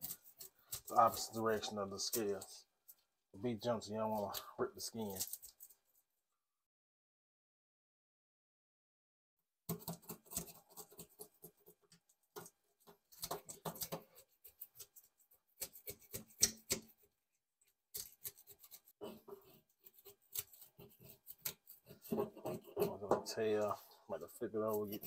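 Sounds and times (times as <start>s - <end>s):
metal spoon scraping fish scales: 0.0s - 2.6s, 4.0s - 5.9s, 18.0s - 25.0s.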